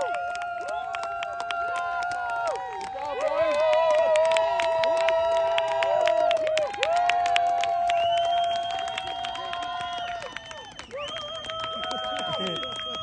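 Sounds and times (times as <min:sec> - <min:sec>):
long cheering shouts: 0:00.0 - 0:13.0
people clapping out of step: 0:00.0 - 0:13.0.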